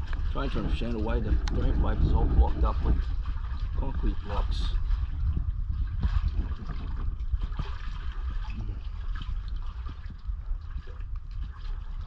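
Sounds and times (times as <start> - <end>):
low rumble: 0.0 - 12.0
small splashes: 0.0 - 12.0
water sloshing and trickling: 0.0 - 12.0.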